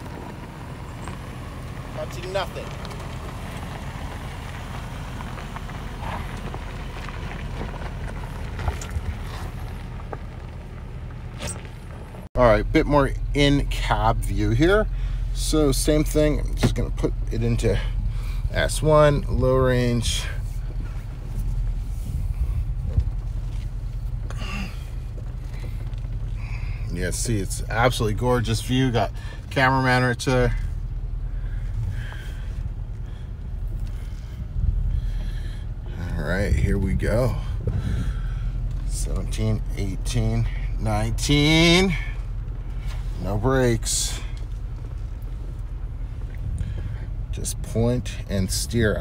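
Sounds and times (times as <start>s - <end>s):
engine rumble inside car cabin: 0.0s - 49.0s.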